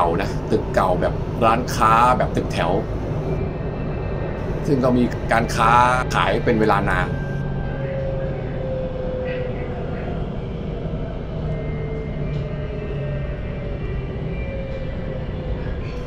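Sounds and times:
train motor whine: 0:00.0 - 0:03.4, 0:04.4 - 0:07.5
train rumbling on track: 0:00.0 - 0:07.8.

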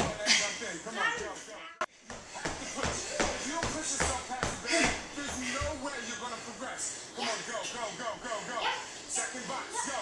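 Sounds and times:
coach's voice: 0:02.5 - 0:10.0.

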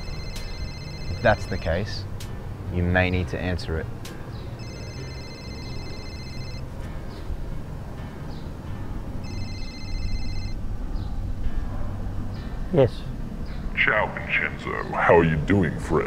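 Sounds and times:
pulsing electronic phone ringtone: 0:00.0 - 0:02.0, 0:04.6 - 0:06.6, 0:09.2 - 0:10.6.

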